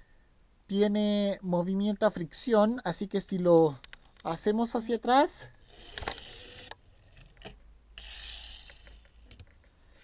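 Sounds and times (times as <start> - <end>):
toy car friction motor whirring: 5.6 - 6.8, 8.0 - 9.4.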